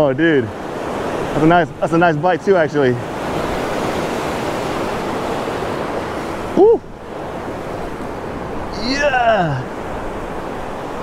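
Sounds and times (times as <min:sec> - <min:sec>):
surf washing over sand: 0:00.0 - 0:11.0.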